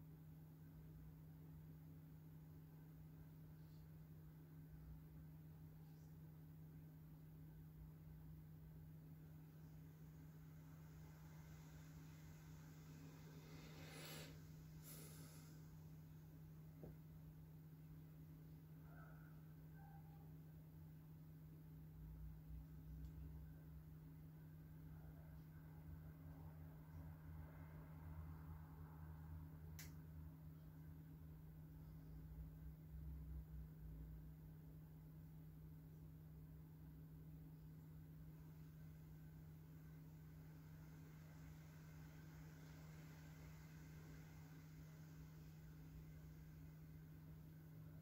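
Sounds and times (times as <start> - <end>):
steady low hum: 0.0 - 48.0
faint short hisses: 13.4 - 15.6.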